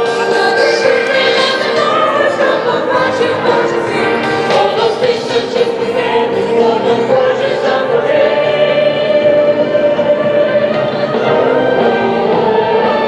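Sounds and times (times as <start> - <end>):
choral singing music: 0.0 - 13.0.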